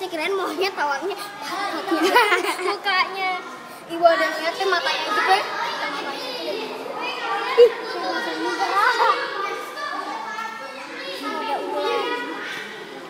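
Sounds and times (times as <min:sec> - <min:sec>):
children talking and calling out: 0:00.0 - 0:13.0.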